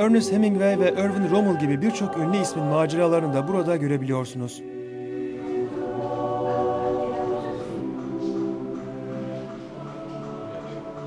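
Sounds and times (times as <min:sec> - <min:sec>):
slow choral music: 0:00.0 - 0:11.0.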